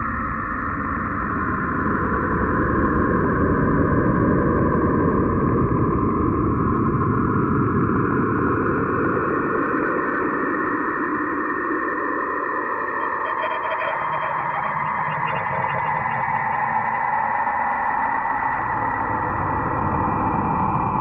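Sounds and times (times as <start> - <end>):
faint high tones: 12.9 - 17.2.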